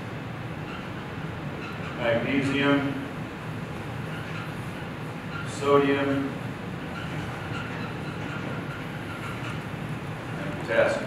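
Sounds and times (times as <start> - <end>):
low room noise rumble: 0.0 - 11.0.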